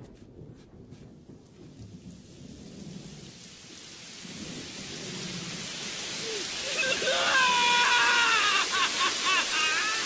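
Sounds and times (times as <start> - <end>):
heavy rain hiss: 1.6 - 10.0
young man wailing and sobbing: 6.2 - 10.0.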